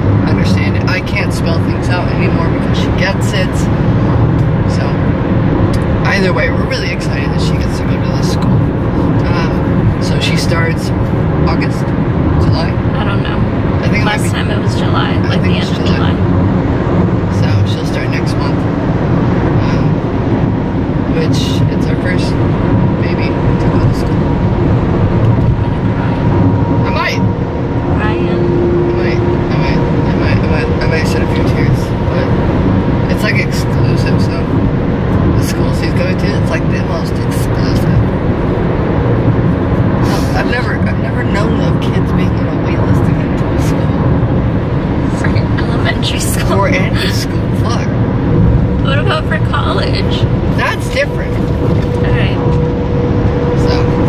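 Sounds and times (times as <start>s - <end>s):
car road noise: 0.0s - 54.0s
people talking: 0.2s - 3.7s, 4.4s - 5.0s, 5.7s - 16.3s, 17.3s - 18.7s, 19.6s - 20.0s, 21.1s - 22.4s, 23.0s - 24.2s, 25.3s - 27.3s, 27.9s - 32.4s, 33.1s - 34.6s, 35.4s - 38.1s, 40.0s - 44.1s, 45.1s - 48.0s, 48.8s - 52.6s, 53.5s - 54.0s.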